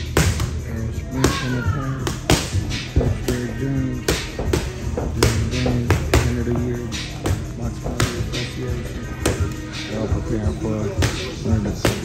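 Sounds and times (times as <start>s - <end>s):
loud background music: 0.0s - 12.0s
boxing gloves smacking mitts: 11.0s - 12.0s.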